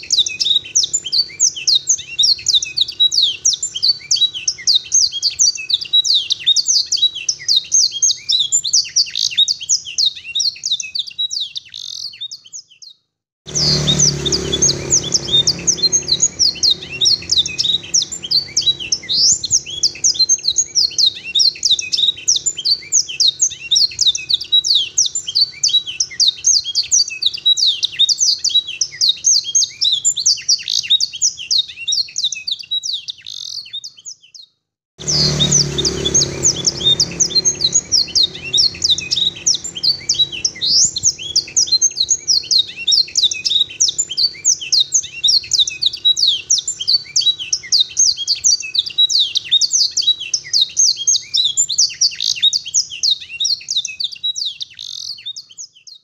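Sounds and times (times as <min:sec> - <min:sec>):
canary singing: 0:00.0 - 0:56.0.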